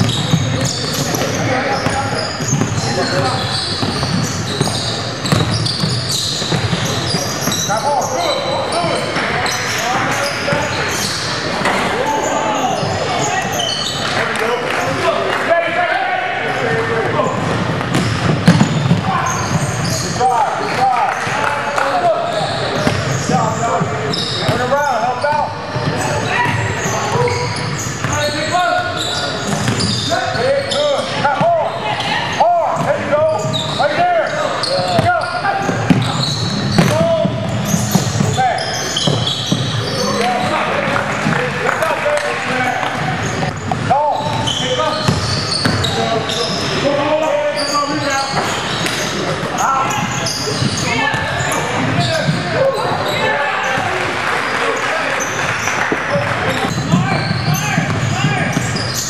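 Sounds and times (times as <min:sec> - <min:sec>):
voices talking and calling out: 0:00.0 - 0:59.0
basketball bouncing on hardwood: 0:03.8 - 0:05.6, 0:17.8 - 0:19.0, 0:22.8 - 0:23.1, 0:45.1 - 0:45.8.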